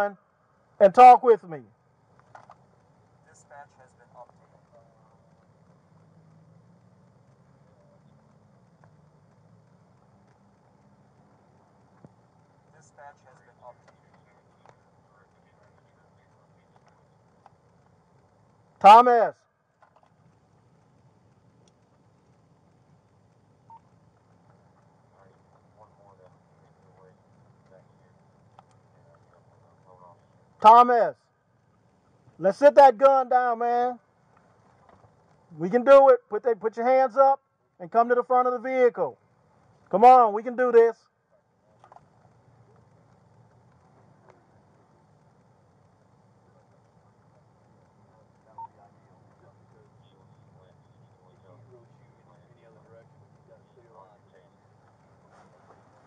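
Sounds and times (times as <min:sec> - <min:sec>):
low steady hum: 0:00.0 - 0:56.0.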